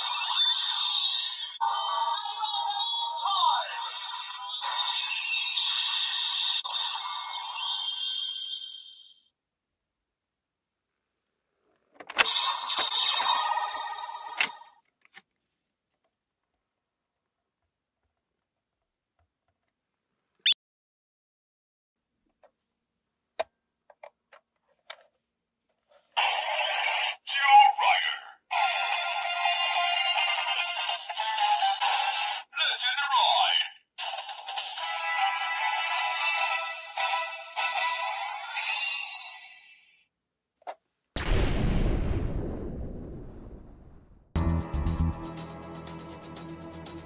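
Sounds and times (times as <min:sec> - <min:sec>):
electronic toy sound effect: 0:00.0 - 0:09.2, 0:12.2 - 0:14.3, 0:26.2 - 0:39.9
synthesized voice: 0:01.6 - 0:05.2, 0:26.7 - 0:29.0, 0:31.5 - 0:33.8.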